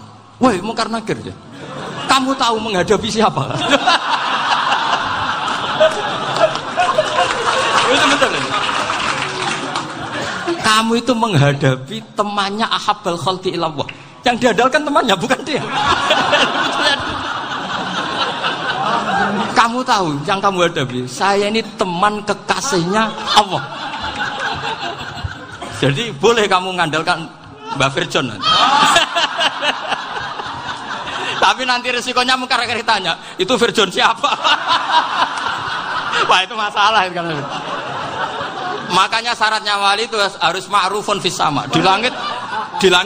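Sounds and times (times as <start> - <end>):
crowd laughing: 1.5 - 2.7, 3.3 - 11.0, 15.2 - 20.2, 22.6 - 26.2, 27.4 - 39.8, 41.5 - 43.0
crowd murmuring: 4.8 - 10.7, 15.6 - 19.6
man speaking: 10.5 - 15.9, 19.4 - 23.8, 25.6 - 28.4, 38.9 - 43.0.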